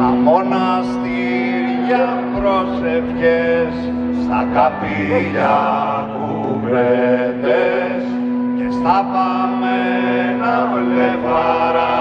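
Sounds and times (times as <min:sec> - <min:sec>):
low drone: 0:00.0 - 0:12.0.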